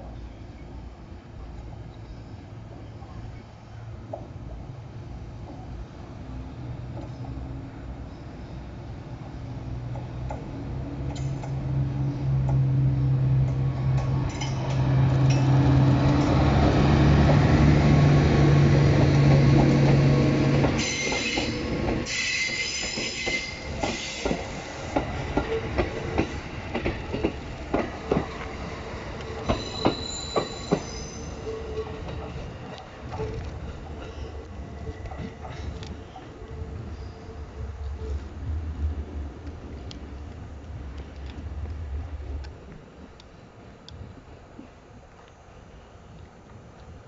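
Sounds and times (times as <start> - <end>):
wheels clacking over rail joints: 13.4 - 36.6
train wheels squealing: 20.6 - 26.8, 29.2 - 32.6, 33.2 - 38.3.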